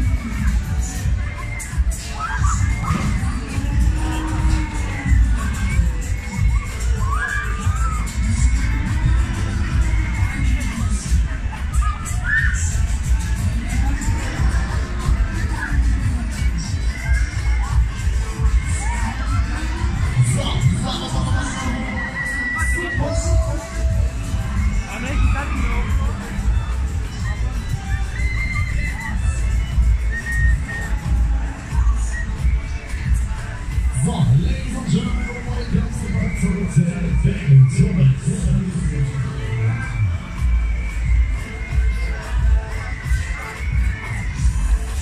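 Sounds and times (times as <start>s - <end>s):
fairground music with heavy bass: 0.0s - 45.0s
crowd shouting: 0.3s - 29.5s.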